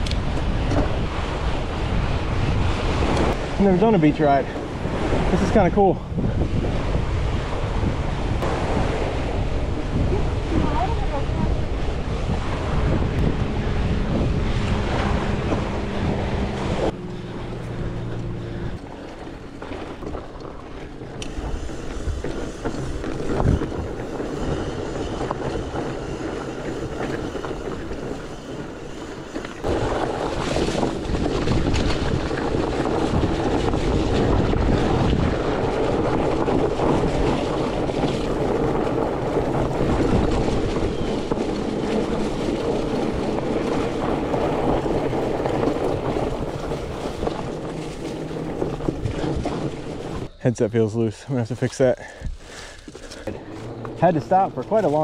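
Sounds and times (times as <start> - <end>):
bike rolling and rattling: 0.0 - 55.0
wind on microphone: 0.0 - 55.0.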